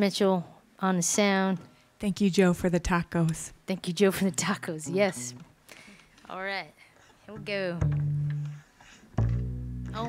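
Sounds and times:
low plucked guitar and bass notes: 4.4s - 5.6s, 7.3s - 10.0s.

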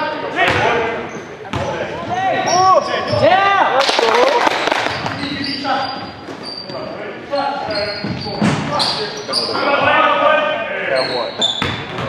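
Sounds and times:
sneakers squeaking: 0.4s - 3.4s, 4.7s - 10.0s, 10.9s - 12.0s
basketball bouncing on court: 0.5s - 0.8s, 1.5s - 1.8s, 11.6s - 12.0s.

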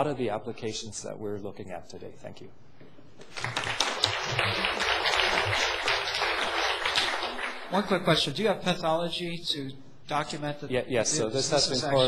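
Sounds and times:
audience applauding: 3.2s - 7.8s.

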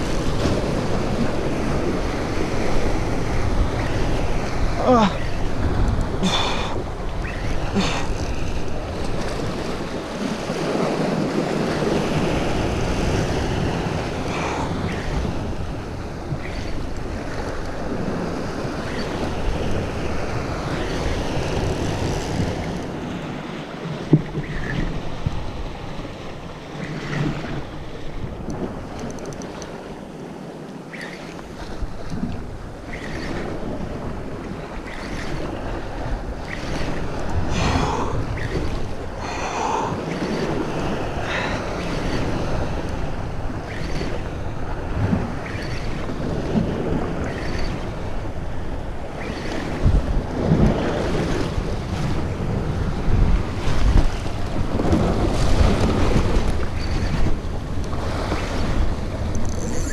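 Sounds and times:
waves and water sloshing: 0.0s - 59.9s
wind buffeting microphone: 0.0s - 59.9s
faint clicks: 28.4s - 29.8s.

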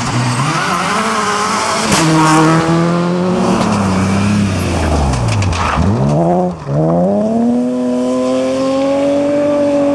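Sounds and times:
rally car passing at speed: 0.0s - 9.9s.

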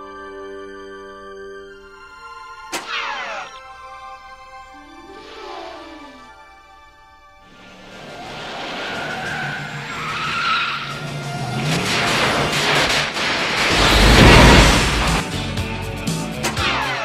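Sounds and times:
tyres skidding: 7.4s - 16.7s
car accelerating hard: 7.5s - 15.2s
loud deep boom: 11.5s - 15.3s.

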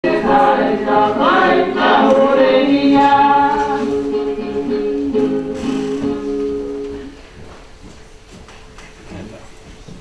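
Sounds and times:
group singing in harmony: 0.0s - 6.9s.

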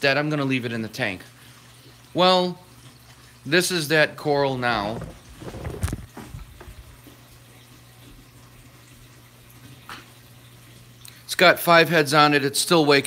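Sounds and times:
circulating aquarium water: 0.0s - 13.0s.

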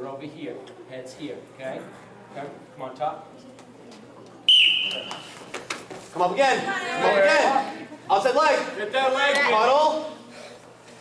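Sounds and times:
referee's whistle blast: 4.5s - 5.3s.

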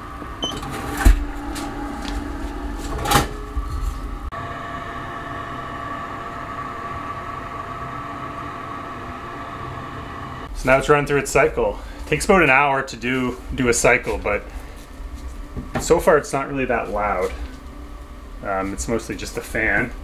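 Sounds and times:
toilet fan humming: 0.0s - 20.0s.

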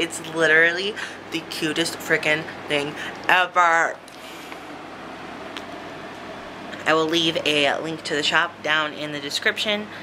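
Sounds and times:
low even hum: 0.0s - 10.0s.

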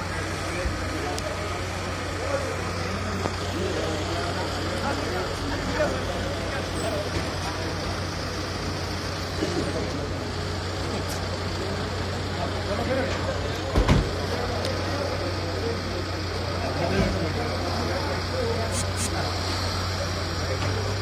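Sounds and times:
crowd talking: 0.0s - 21.0s
idling vehicle engine hum: 0.0s - 21.0s.

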